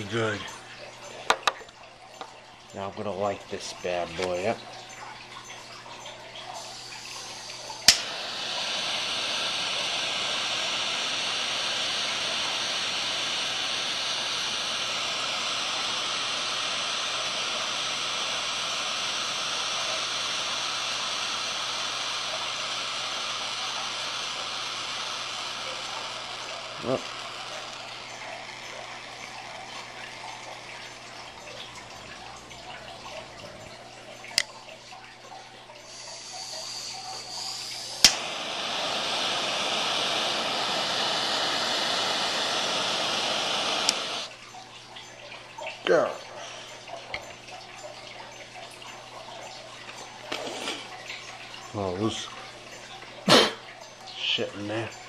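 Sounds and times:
jet flame hissing: 6.3s - 34.5s, 35.8s - 44.4s, 50.0s - 52.3s
torch lighter clicking: 7.0s - 30.6s, 36.6s - 44.3s.

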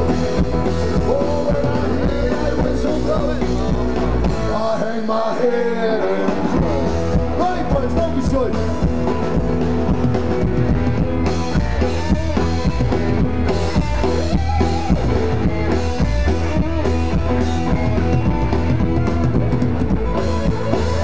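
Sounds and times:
electric guitar lead with bends: 0.0s - 4.6s, 6.0s - 21.0s
bass drum: 0.0s - 4.7s, 6.3s - 21.0s
live band playing: 0.0s - 21.0s.

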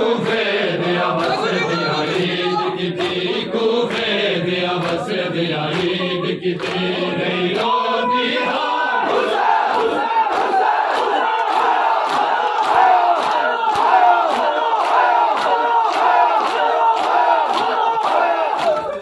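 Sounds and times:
crowd of men shouting: 0.8s - 3.6s, 7.3s - 19.0s.

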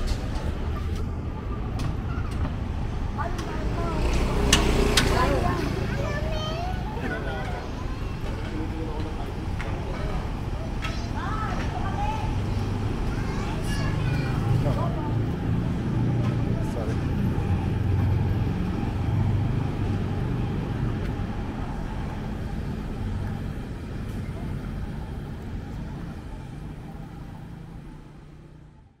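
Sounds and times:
road noise: 0.0s - 29.0s
vehicle engines humming: 0.0s - 29.0s.

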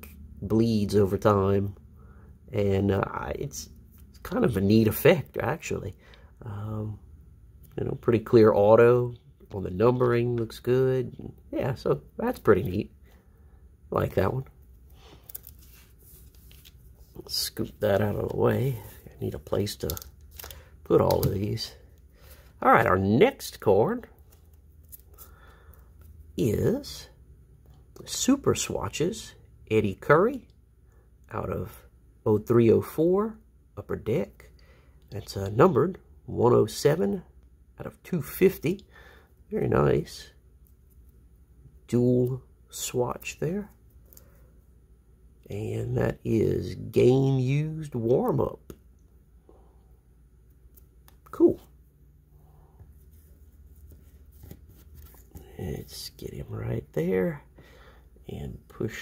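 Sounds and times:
low room hum: 0.0s - 59.0s
trading cards rustling and scraping: 15.0s - 22.6s, 24.2s - 26.4s, 52.6s - 56.2s.

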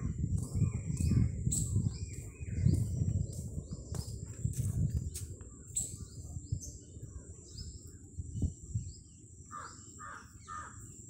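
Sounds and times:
small birds chirping: 0.0s - 11.0s
crow cawing: 9.5s - 10.8s.

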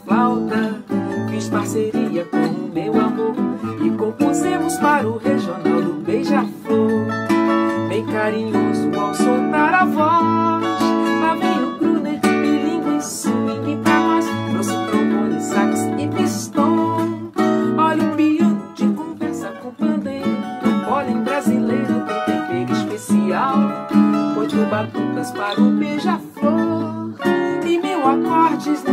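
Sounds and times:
acoustic guitar: 0.0s - 28.9s
cavaquinho: 0.0s - 28.9s.

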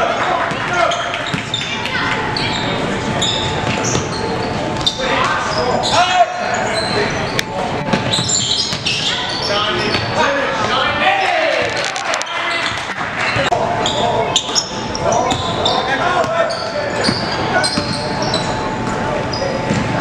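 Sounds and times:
voices in echoing gym: 0.0s - 20.0s.

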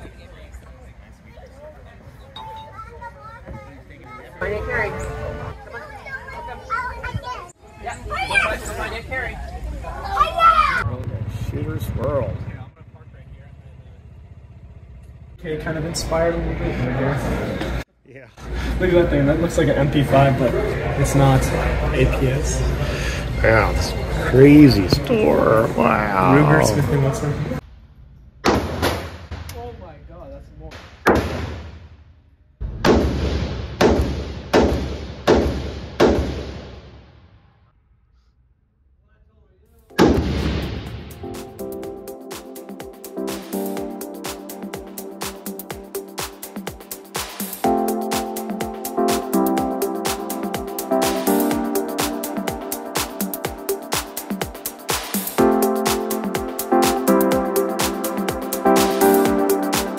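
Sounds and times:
slow vehicle rumbling: 9.4s - 17.8s.

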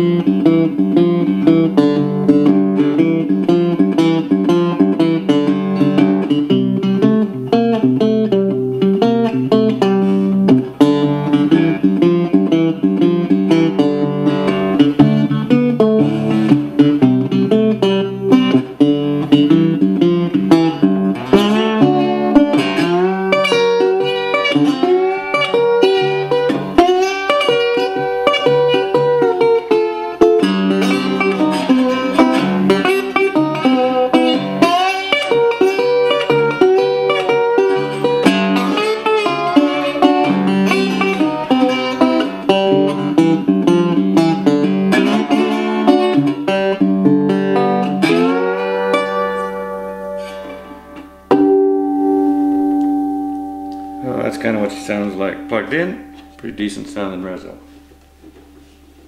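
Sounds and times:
slide guitar fingerpicked: 0.0s - 59.0s.

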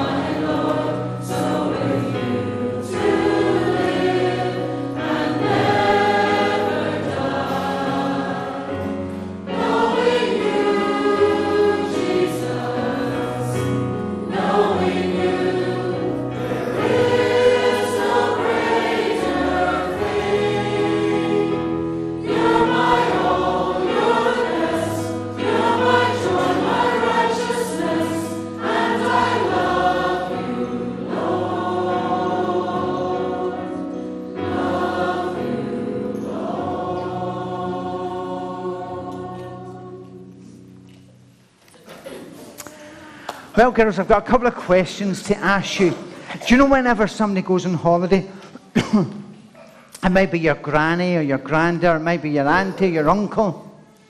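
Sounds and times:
congregation singing a hymn: 0.0s - 54.0s.

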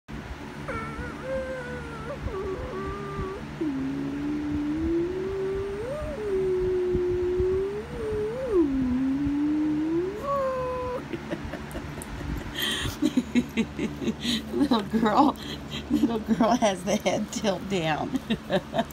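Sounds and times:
person wavering oooo: 0.7s - 18.9s.

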